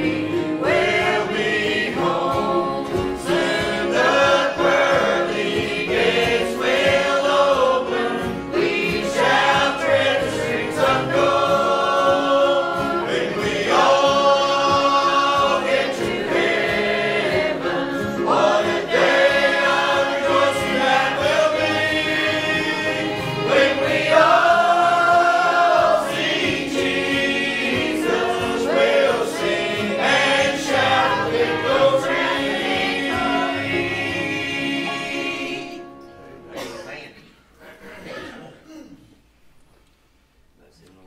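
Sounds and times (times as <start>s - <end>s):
group singing a hymn: 0.0s - 36.0s, 37.6s - 38.3s.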